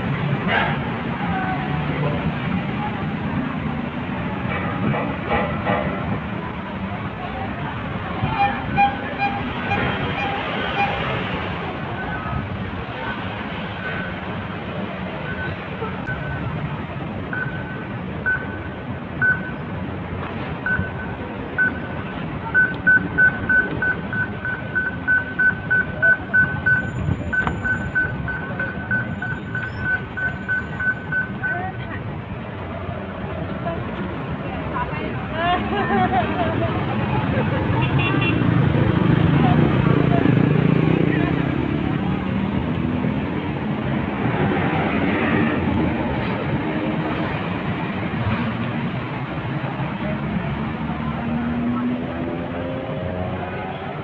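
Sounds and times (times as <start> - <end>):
crowd chatter: 0.0 - 54.0
street traffic: 0.0 - 54.0
crossing signal beeping: 8.3 - 12.4, 13.8 - 14.5, 15.2 - 19.7, 20.6 - 31.9.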